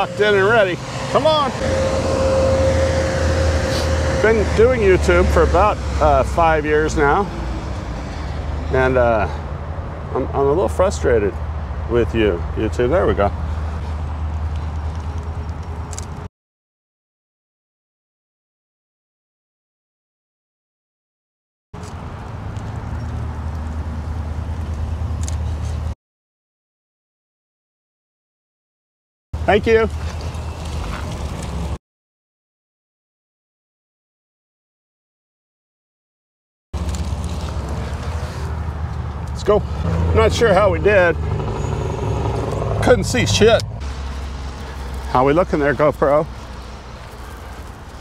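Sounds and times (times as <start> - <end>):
vacuum motors droning: 0.0 - 6.0
car engine humming past: 0.0 - 9.5, 36.8 - 48.0.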